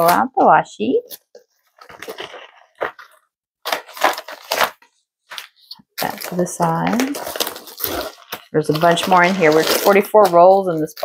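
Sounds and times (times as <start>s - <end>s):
foil mailer crinkling: 1.7s - 11.0s.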